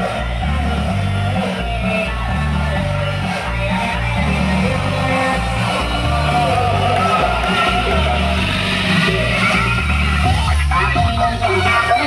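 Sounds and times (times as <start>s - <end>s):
loud music with heavy bass: 0.0s - 12.0s.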